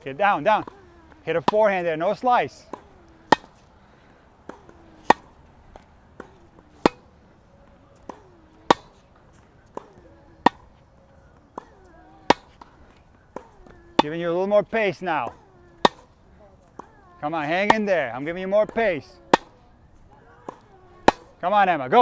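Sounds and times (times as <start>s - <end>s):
racquets hitting tennis ball: 0.0s - 22.0s
tennis ball bouncing: 0.0s - 22.0s.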